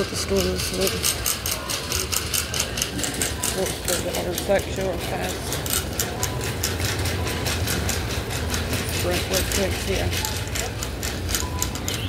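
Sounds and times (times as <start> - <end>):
shopping cart wheels rumbling on tile: 0.0 - 12.0.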